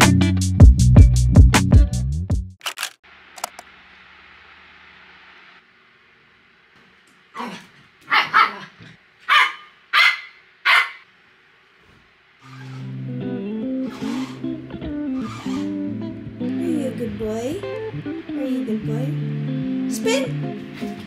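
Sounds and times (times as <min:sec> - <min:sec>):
dog barking: 0:07.4 - 0:11.1.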